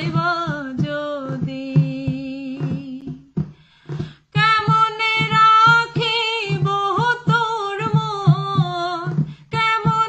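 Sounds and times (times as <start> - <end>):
low drum beat: 0.0 - 10.0
woman singing folk song: 0.0 - 10.0.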